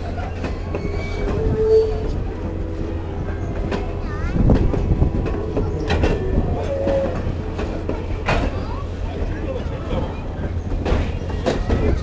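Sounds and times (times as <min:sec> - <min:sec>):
train clanks: 0:00.0 - 0:12.0
train rumbling on track: 0:00.0 - 0:12.0
short squeal: 0:00.7 - 0:02.1.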